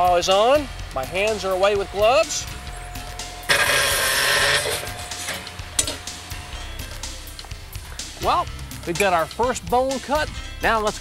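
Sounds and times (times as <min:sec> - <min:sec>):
circular saw whine: 0:00.9 - 0:08.2
saw blade cutting steel tube: 0:03.4 - 0:06.2.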